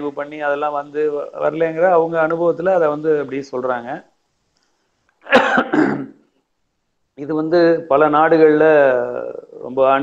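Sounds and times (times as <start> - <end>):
man clearing his throat: 5.2 - 6.2.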